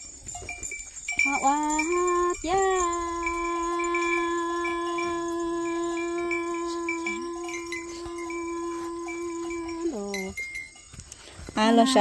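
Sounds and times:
bright high tone: 1.2s - 10.8s.

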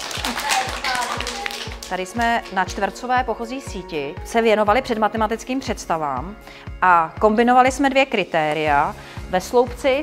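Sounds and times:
children clapping: 0.0s - 2.6s
background music with steady beat: 0.0s - 10.0s.

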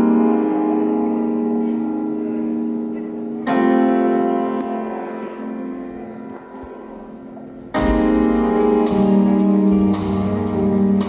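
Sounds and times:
sustained keyboard chord: 0.0s - 11.0s
rock band playing: 7.8s - 11.0s.

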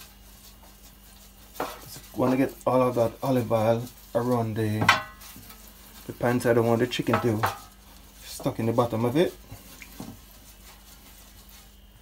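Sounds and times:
pastry brush swishing on tray: 0.0s - 12.0s.

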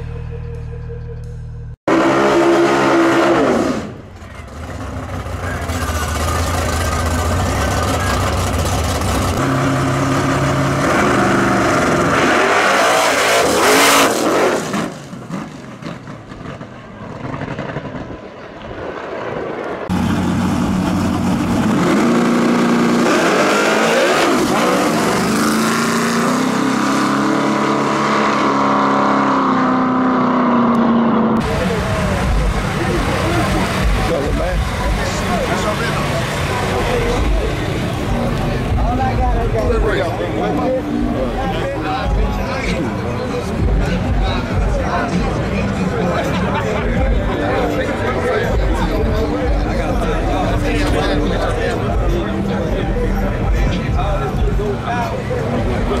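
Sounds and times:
racing car engines revving: 0.0s - 18.7s, 19.7s - 56.0s
voices: 31.4s - 56.0s.

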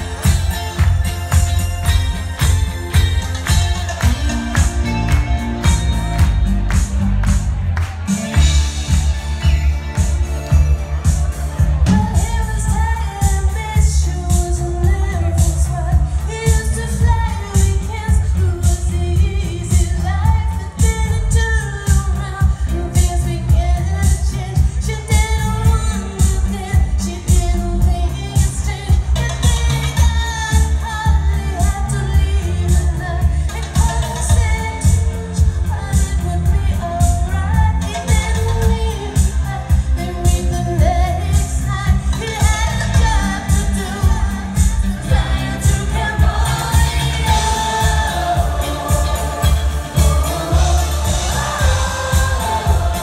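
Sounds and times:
heavy kick drum and bass beat: 0.0s - 53.0s
live pop band: 0.0s - 53.0s
woman singing: 11.9s - 53.0s.

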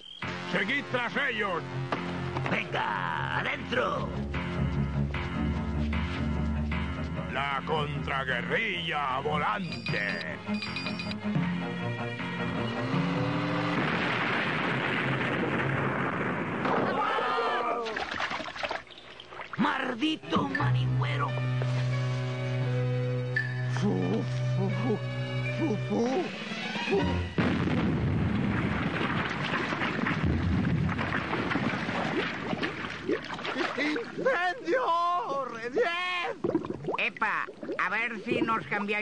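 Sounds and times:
loud noisy roar: 12.8s - 14.2s
rumbling and crackling: 13.2s - 17.0s, 27.4s - 33.1s
cartoon explosion: 13.3s - 17.7s, 26.3s - 32.2s.

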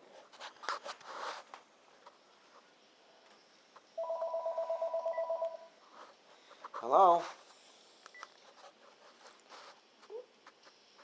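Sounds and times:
phone ringing: 4.0s - 5.7s.

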